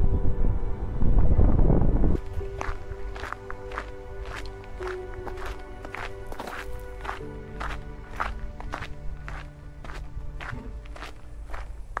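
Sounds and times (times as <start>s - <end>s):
background music with long notes: 0.0s - 12.0s
footsteps on gravel: 2.2s - 12.0s.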